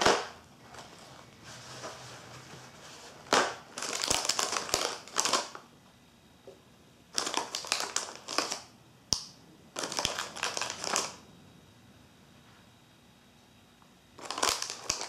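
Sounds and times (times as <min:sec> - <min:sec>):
plastic wrapper crinkling: 0:03.3 - 0:05.6, 0:07.1 - 0:08.7, 0:09.8 - 0:11.2, 0:14.2 - 0:15.0.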